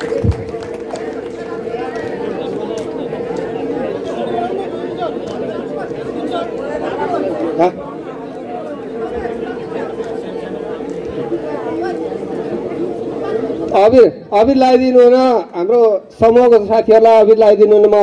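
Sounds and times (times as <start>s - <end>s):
steady hum: 0.0s - 16.4s
murmur of audience voices: 0.0s - 18.0s.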